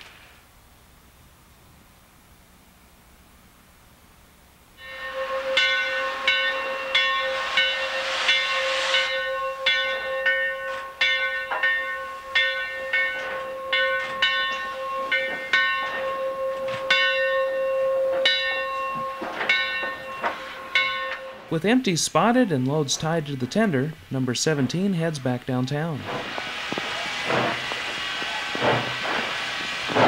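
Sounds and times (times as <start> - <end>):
steam hiss: 4.8 - 16.9, 17.9 - 30.0
steam locomotive bell ringing: 4.8 - 30.0.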